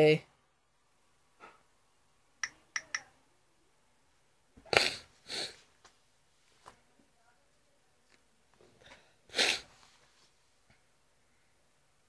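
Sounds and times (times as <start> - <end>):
touchscreen taps: 2.4 - 3.0.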